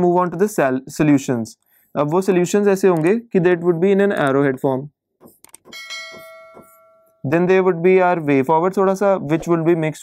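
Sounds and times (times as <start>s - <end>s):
bell-like chime: 5.7s - 7.3s.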